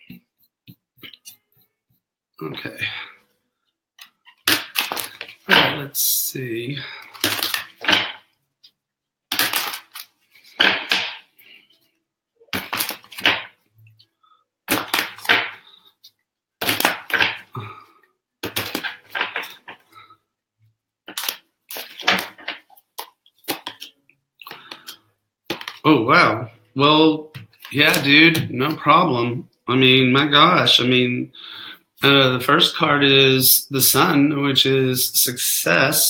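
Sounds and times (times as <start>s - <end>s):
cards being shuffled: 4.0s - 5.9s, 7.0s - 8.2s, 9.3s - 11.3s, 12.5s - 13.6s, 14.7s - 15.6s, 16.6s - 17.5s, 18.4s - 19.8s, 21.1s - 23.9s, 24.5s - 25.8s, 27.4s - 28.8s.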